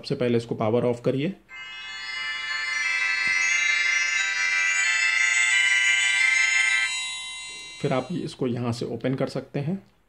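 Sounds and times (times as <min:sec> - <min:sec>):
smart watch electronic melody: 0:01.5 - 0:08.3.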